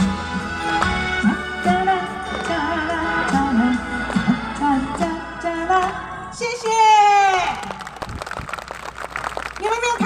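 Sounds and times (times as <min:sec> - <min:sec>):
band accompaniment: 0:00.0 - 0:05.6
woman singing into microphone: 0:01.2 - 0:07.6.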